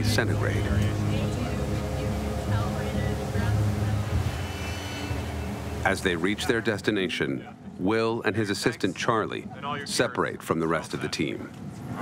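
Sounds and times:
motorboat engine humming: 0.0s - 12.0s.

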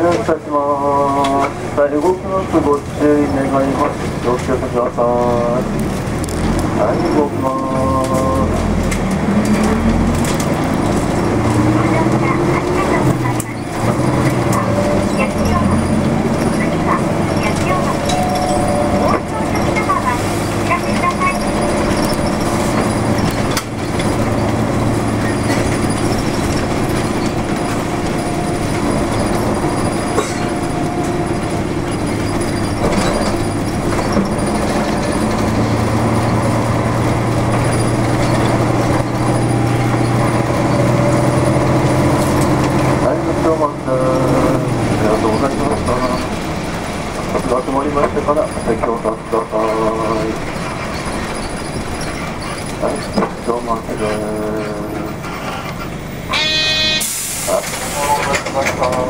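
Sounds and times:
bus diesel engine drone: 0.0s - 59.0s
person speaking: 57.5s - 59.0s.

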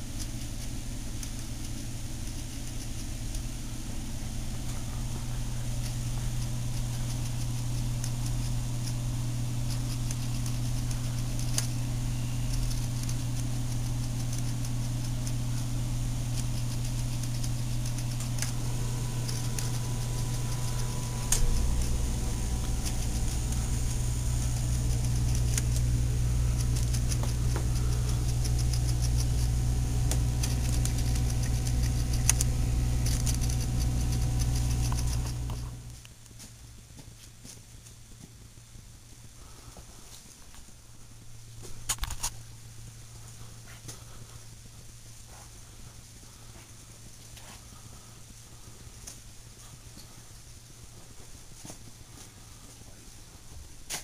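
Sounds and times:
low machine hum: 0.0s - 54.0s
deep rumble: 0.8s - 36.0s.

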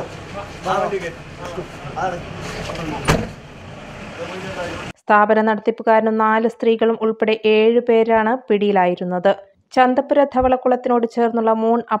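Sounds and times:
van door shutting: 2.3s - 3.5s.

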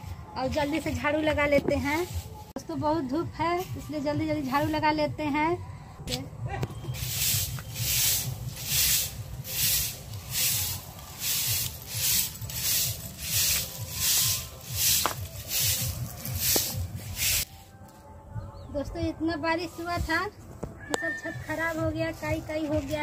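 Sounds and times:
broom sweeping grit on concrete: 7.0s - 17.7s.

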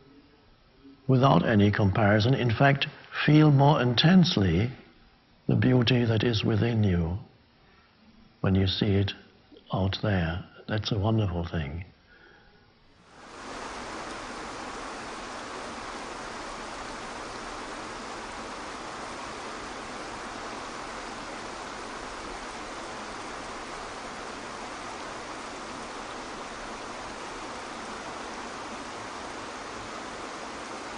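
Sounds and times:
waterfall pouring into a pool: 13.1s - 30.9s.

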